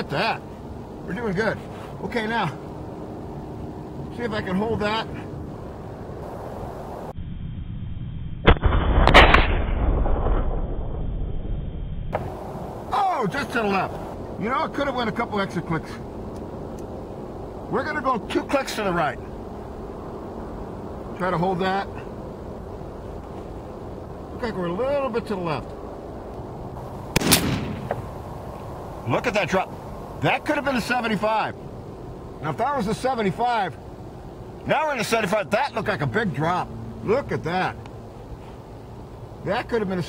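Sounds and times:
rifle shot: 8.4s - 10.6s, 27.1s - 28.1s
gunshot echo: 8.4s - 10.7s, 27.1s - 28.1s.

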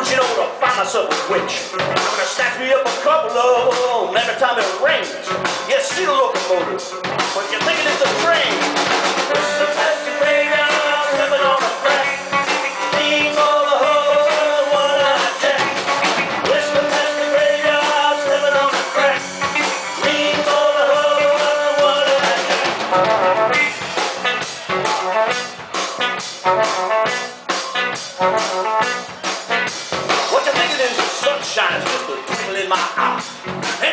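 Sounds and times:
blues-rock band playing: 0.0s - 33.9s
drum hits: 5.3s - 33.9s
electric guitar lead line: 6.6s - 33.9s.

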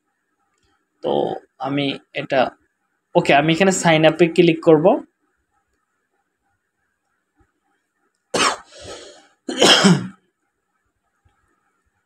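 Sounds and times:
person coughing: 8.4s - 10.2s.

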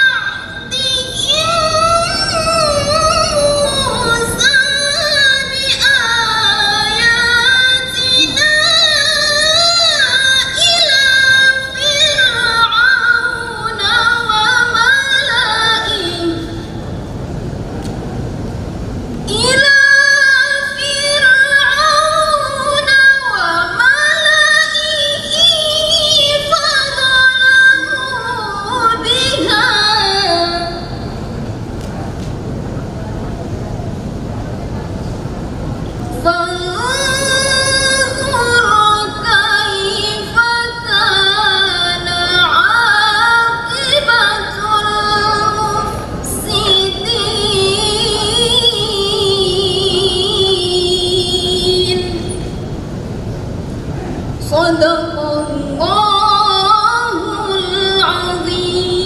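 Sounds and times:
woman reciting melodically: 0.0s - 17.0s, 18.8s - 31.4s, 36.0s - 53.0s, 53.9s - 59.0s
steady background rumble: 0.0s - 59.0s.

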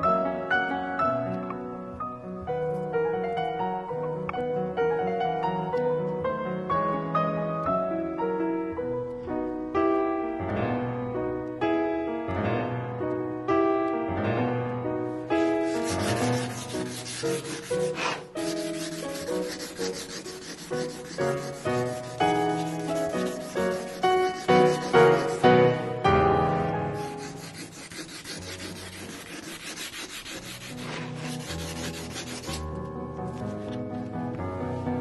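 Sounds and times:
soft piano music: 0.0s - 35.0s
sanding scraping rub: 15.3s - 25.7s, 26.9s - 32.6s.

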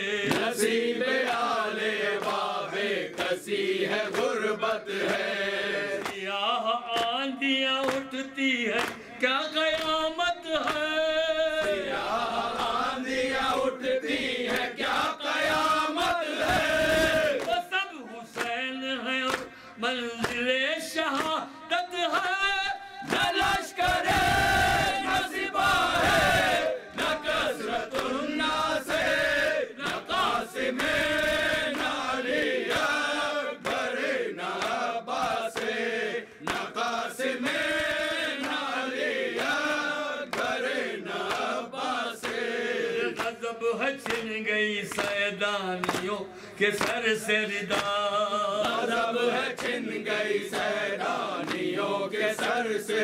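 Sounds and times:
men chanting a lament: 0.0s - 53.0s.

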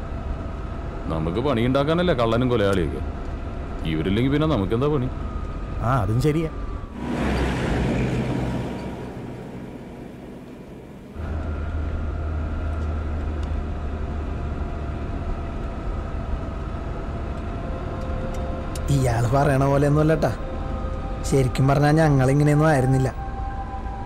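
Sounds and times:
vehicle engine drone from inside: 6.9s - 18.9s
jeep driving past: 7.0s - 12.5s.

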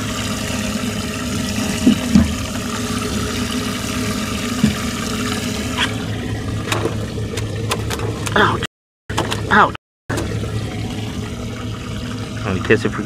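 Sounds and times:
water running and splashing: 0.0s - 8.4s, 10.2s - 13.0s
pump hum: 0.0s - 13.0s.

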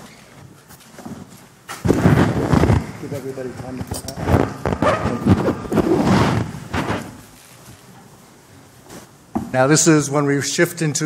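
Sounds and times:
indistinct room noise: 0.0s - 11.0s.

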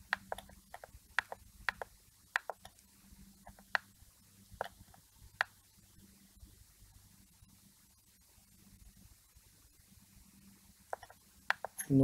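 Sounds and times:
mouse buttons clicking: 0.0s - 2.8s, 3.5s - 3.9s, 4.6s - 5.6s, 10.9s - 11.9s
faint low hum: 0.0s - 12.0s.

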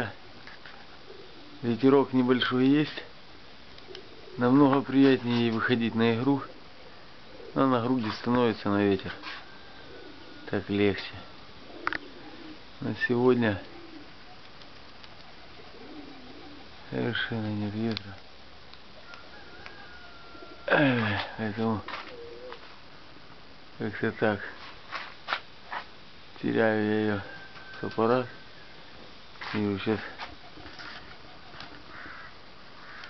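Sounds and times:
low background noise: 0.0s - 33.0s
pigeons cooing: 0.0s - 33.0s
steady background hiss: 0.0s - 33.0s
soft rustles: 0.3s - 1.5s, 3.8s - 5.8s, 7.8s - 9.9s, 21.0s - 22.9s, 24.4s - 26.0s, 28.8s - 32.2s.

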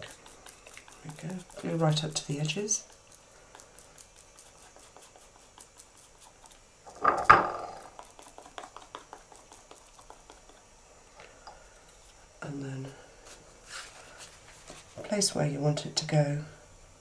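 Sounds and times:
glue applicator dabbing on paper: 0.0s - 6.6s, 7.7s - 10.7s.

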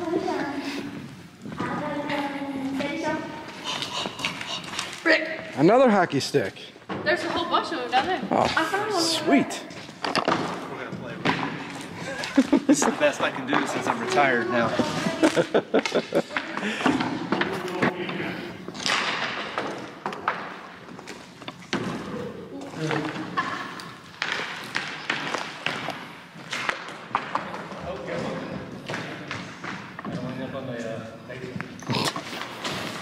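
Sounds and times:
laughter: 12.0s - 13.0s, 15.0s - 16.7s.

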